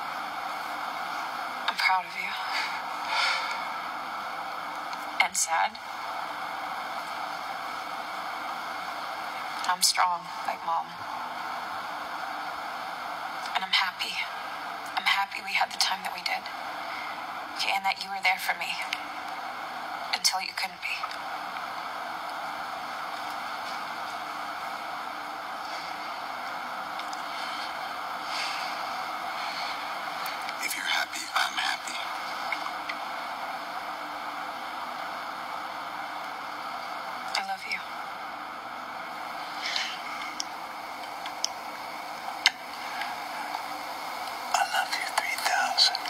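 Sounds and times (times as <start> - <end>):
faint steady hiss: 0.0 - 46.0
man whispering softly: 30.3 - 32.5, 44.5 - 46.0.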